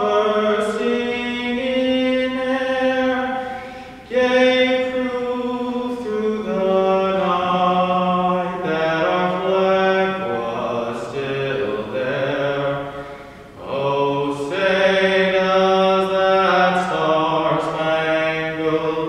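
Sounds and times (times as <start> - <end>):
person singing anthem: 0.0 - 19.0.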